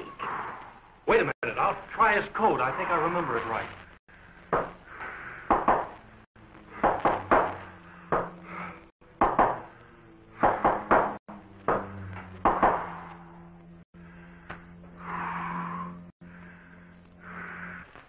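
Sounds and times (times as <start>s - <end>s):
steady low hum: 3.7s - 18.0s.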